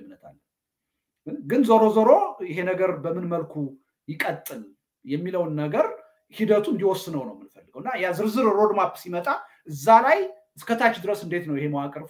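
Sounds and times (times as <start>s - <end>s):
man speaking: 0.0s - 0.4s, 1.2s - 12.0s.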